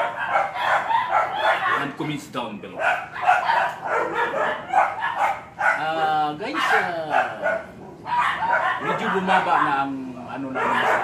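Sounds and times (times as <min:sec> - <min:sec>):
man talking: 0:01.7 - 0:02.9, 0:05.8 - 0:07.6, 0:08.8 - 0:11.0.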